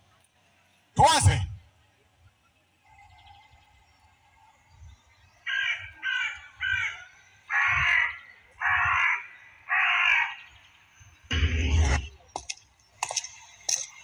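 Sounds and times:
crow-like caws: 0:05.4 - 0:10.6.

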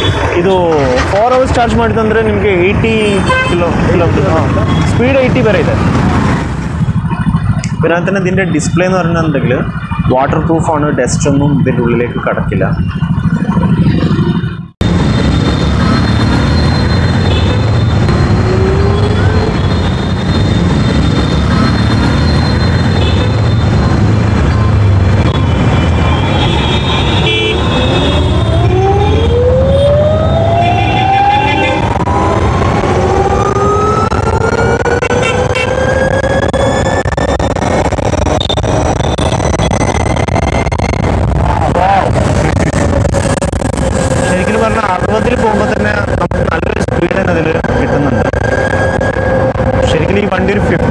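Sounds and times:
wind noise on microphone: 0:31.0 - 0:44.4.

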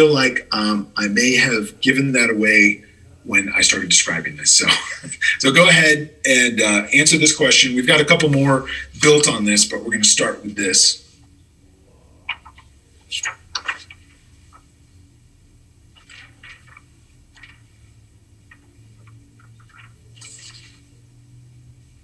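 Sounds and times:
low steady hum: 0:00.0 - 0:22.0.

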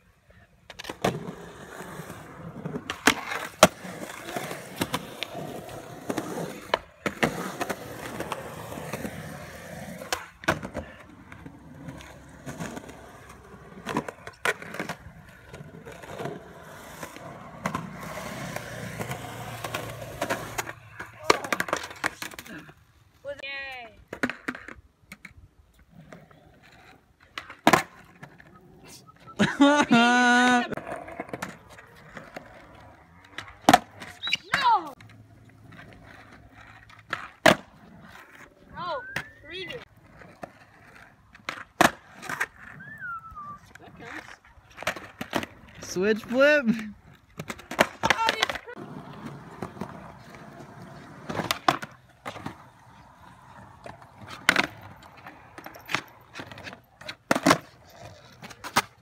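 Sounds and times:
skateboard wheels rolling on concrete: 0:00.0 - 0:59.0
skateboard clacks: 0:02.6 - 0:22.7, 0:29.2 - 0:42.9, 0:43.6 - 0:59.0.

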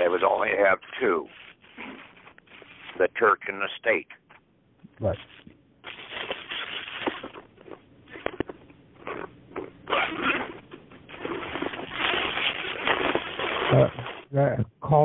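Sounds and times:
phone line crackling and rustling: 0:00.0 - 0:03.6, 0:05.2 - 0:09.3, 0:09.9 - 0:14.3.

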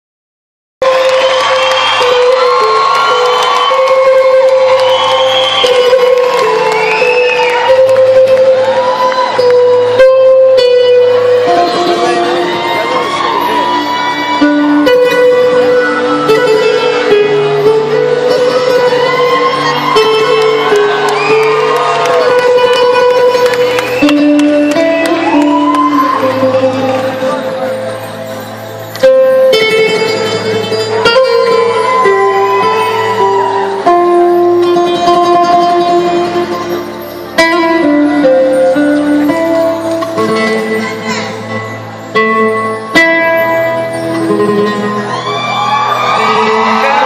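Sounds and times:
crowd cheering: 0:00.8 - 0:41.7, 0:43.6 - 0:47.0
live band with strings: 0:00.8 - 0:47.0.

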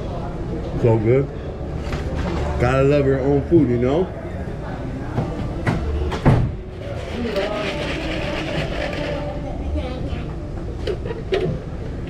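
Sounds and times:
indistinct voices: 0:00.0 - 0:12.0.

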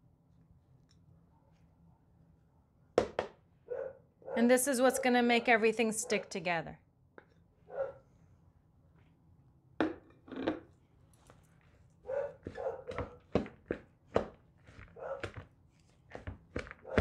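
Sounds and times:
wooden spoon stirring food: 0:11.7 - 0:17.0.

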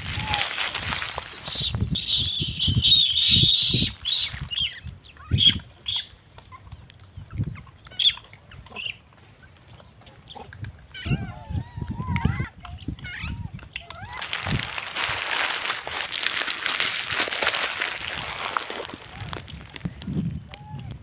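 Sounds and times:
monkeys screeching and chirping: 0:00.0 - 0:06.1, 0:07.9 - 0:09.0.

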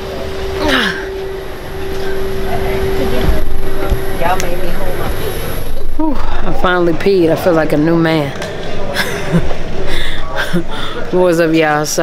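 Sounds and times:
low thumps: 0:00.0 - 0:09.8
airliner cabin hum and rumble: 0:00.0 - 0:11.8
falling vocal sound: 0:00.4 - 0:02.1.

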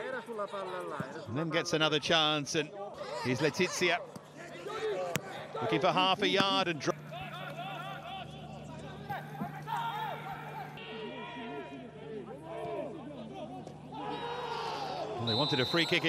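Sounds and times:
steady low hum: 0:05.3 - 0:10.9
players shouting to each other: 0:09.0 - 0:16.0.

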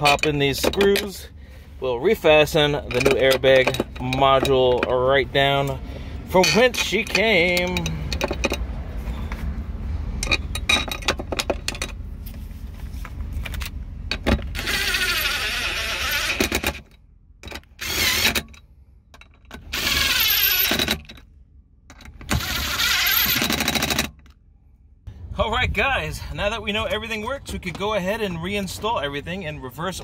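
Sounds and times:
clicks of screws and parts: 0:00.0 - 0:01.2, 0:02.7 - 0:04.9, 0:06.4 - 0:08.7.

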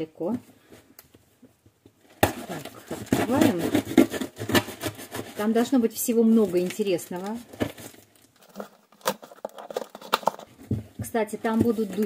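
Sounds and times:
scissor blade scraping packing tape: 0:02.4 - 0:05.5.

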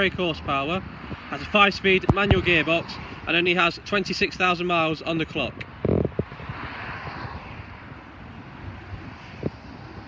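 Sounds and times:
distant vehicle rushing: 0:05.6 - 0:10.0.

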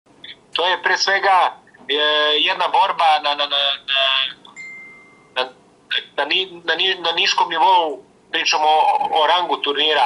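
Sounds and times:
man speaking: 0:00.3 - 0:04.5, 0:05.4 - 0:10.0
faint steady high tone: 0:04.4 - 0:05.6.

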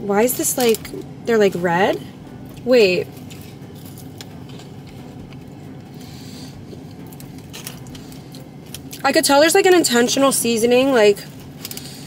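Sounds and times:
low hum of car cabin: 0:00.0 - 0:12.0
person chewing food: 0:02.5 - 0:09.0.

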